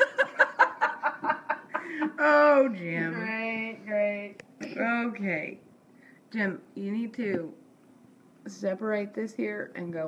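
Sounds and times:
woman laughing: 0.0 - 3.2.

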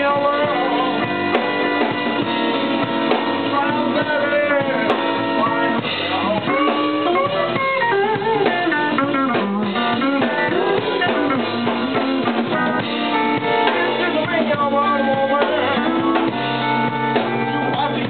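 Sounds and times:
bass guitar: 0.0 - 18.0
drum kit: 0.0 - 18.0
electric guitar lead: 0.0 - 18.0.

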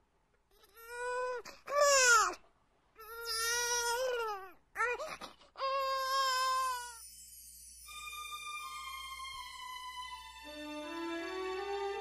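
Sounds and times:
newborn baby crying: 0.5 - 2.4, 3.0 - 7.0.

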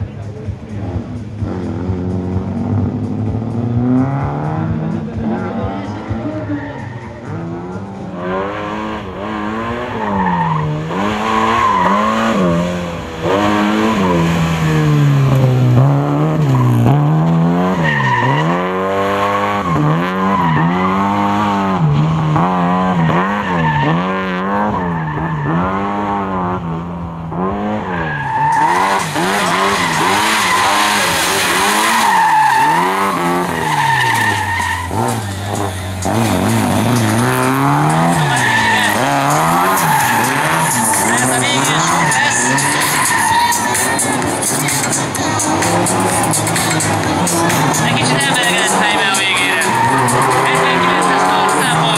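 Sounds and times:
car engine revving: 0.0 - 51.9
tyres squealing and skidding: 3.8 - 26.2, 27.5 - 51.9.

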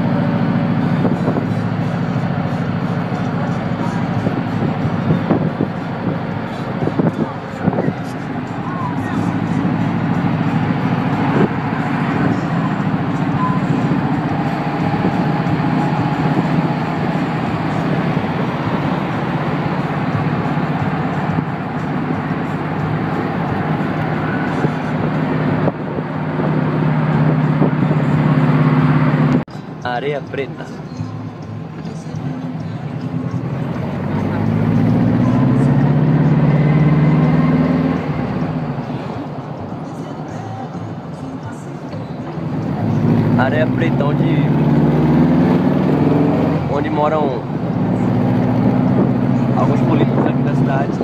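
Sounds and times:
road noise: 0.0 - 51.0
vehicle engine running: 0.0 - 51.0
wind noise: 4.2 - 8.0, 47.5 - 51.0.

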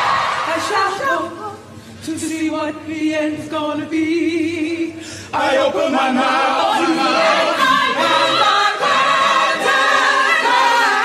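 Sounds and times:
gospel choir singing: 0.0 - 1.3, 5.3 - 11.0.

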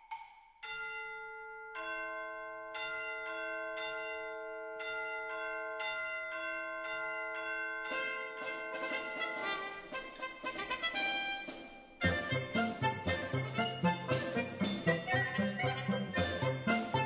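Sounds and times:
quick-moving music: 8.5 - 17.0.

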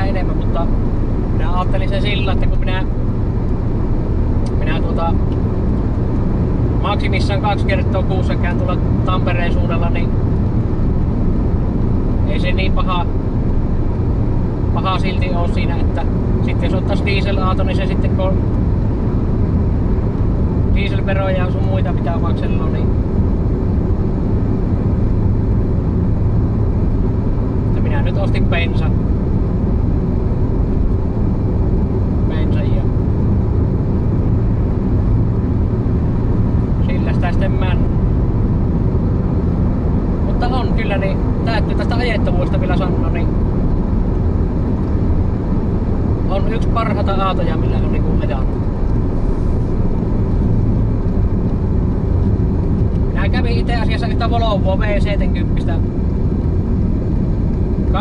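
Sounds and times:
car interior engine drone: 0.0 - 58.0.

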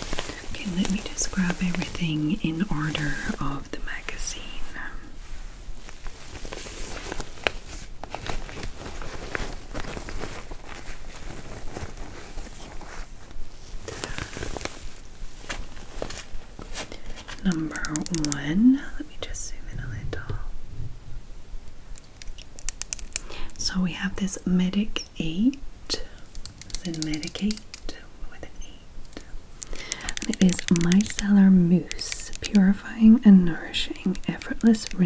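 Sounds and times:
fabric pouch rustling: 0.0 - 18.4, 26.2 - 27.9, 29.0 - 32.8, 33.4 - 35.0
nails clicking on plastic bottle: 22.0 - 23.3, 29.1 - 31.3, 31.9 - 32.6.

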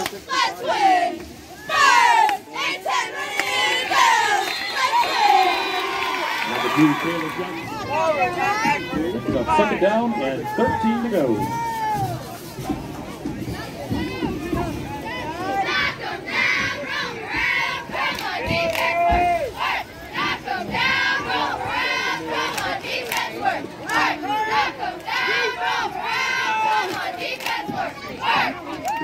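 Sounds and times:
cheerleaders shouting a chant: 0.0 - 12.3, 13.4 - 29.0
crowd noise: 0.0 - 29.0.

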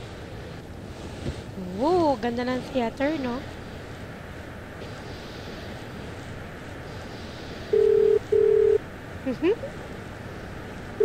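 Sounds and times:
telephone ringback tone: 7.7 - 8.8.

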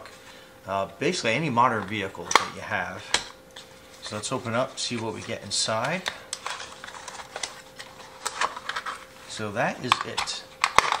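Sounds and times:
packaging clicks and scrapes: 5.0 - 9.1, 9.8 - 11.0.

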